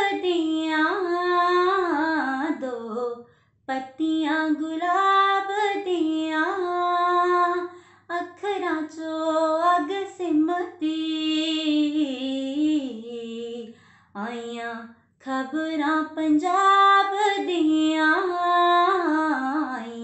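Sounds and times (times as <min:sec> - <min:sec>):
woman singing unaccompanied: 0:00.0 - 0:20.0.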